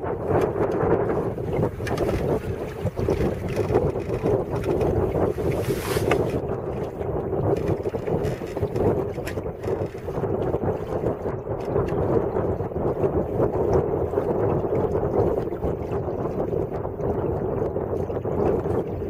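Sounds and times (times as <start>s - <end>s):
water slapping along hull: 0.0s - 19.0s
wind buffeting microphone: 0.0s - 19.0s.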